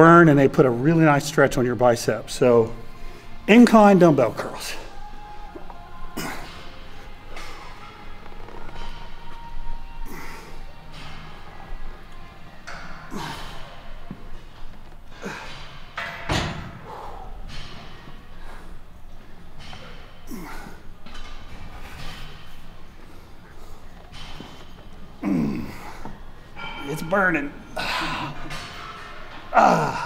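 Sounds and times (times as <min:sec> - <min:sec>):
faint background music: 0:00.0 - 0:30.0.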